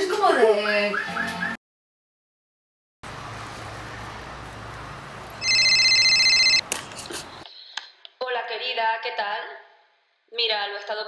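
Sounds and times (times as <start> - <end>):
electronic telephone ringing: 5.4 - 6.6.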